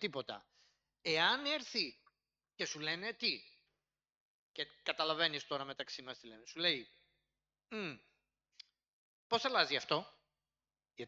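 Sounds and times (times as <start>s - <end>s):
faint breath: 0.5s - 0.9s.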